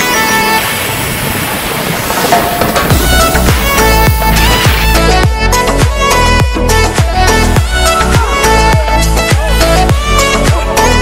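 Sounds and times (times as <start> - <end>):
music: 0.0 - 0.7, 2.3 - 11.0
wind noise on microphone: 0.0 - 8.9.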